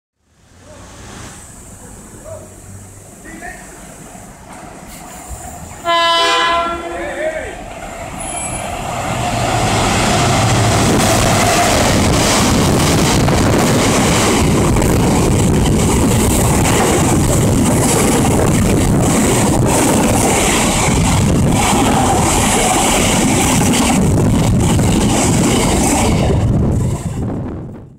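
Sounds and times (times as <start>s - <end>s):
train passing rumble: 0.2s - 27.9s
locomotive horn blast: 5.8s - 7.1s.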